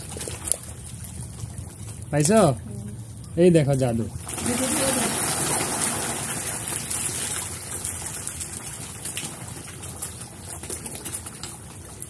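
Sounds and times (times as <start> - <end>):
fish thrashing and splashing water: 0.0 - 2.1, 4.1 - 12.0.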